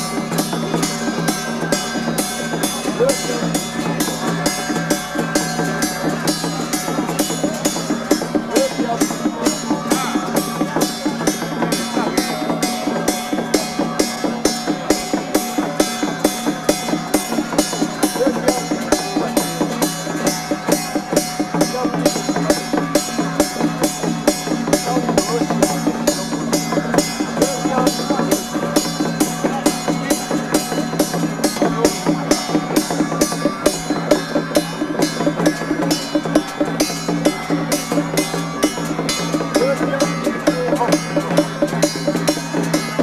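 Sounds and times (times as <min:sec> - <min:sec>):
crowd voices: 0:00.0 - 0:43.0
percussion struck in steady beat: 0:00.0 - 0:43.0.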